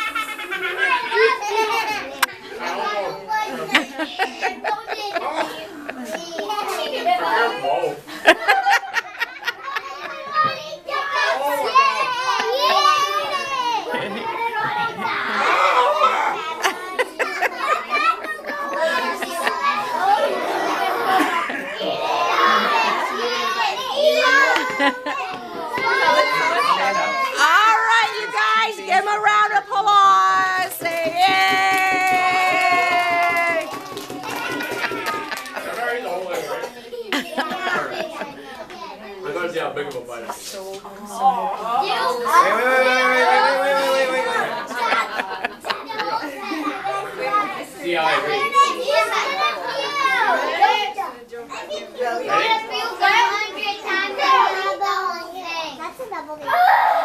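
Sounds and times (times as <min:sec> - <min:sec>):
children talking and shouting: 0:00.0 - 0:57.0.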